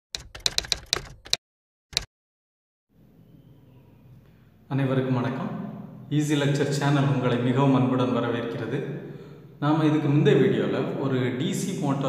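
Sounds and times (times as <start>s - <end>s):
keyboard typing clicks: 0.2s - 2.1s.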